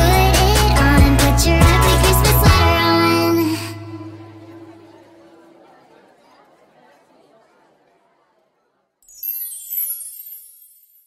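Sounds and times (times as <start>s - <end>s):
faint murmur of voices: 2.6s - 9.0s.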